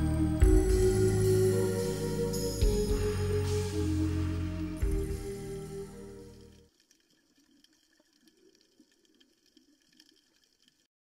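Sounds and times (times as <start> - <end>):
light crackles: 6.2 - 10.9.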